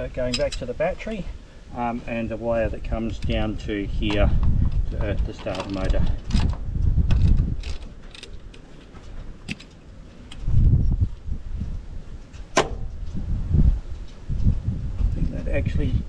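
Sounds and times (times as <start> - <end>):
spanner clicking on metal bolts: 0.2 - 0.8.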